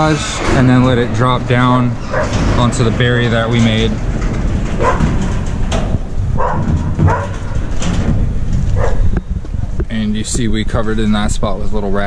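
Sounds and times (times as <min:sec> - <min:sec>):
steady low rumble: 0:00.0 - 0:12.0
dog barking: 0:04.8 - 0:05.0, 0:06.4 - 0:07.4, 0:08.8 - 0:09.1.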